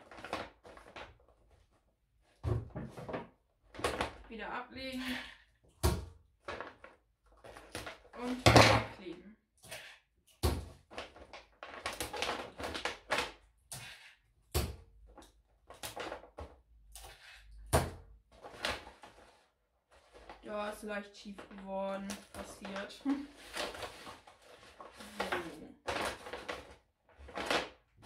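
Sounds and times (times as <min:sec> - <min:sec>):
wrapping paper crinkling: 0:00.0 - 0:01.8, 0:10.8 - 0:13.4, 0:18.4 - 0:28.0.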